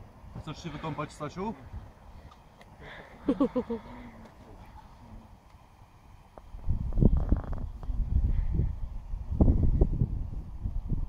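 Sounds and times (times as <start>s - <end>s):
wind buffeting microphone: 6.2s - 11.0s.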